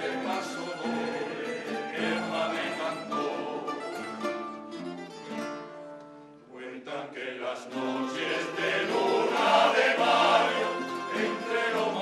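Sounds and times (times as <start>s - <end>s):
male choir singing: 0.0s - 4.1s, 6.5s - 12.0s
guitars and plucked strings: 0.0s - 6.5s, 7.7s - 12.0s.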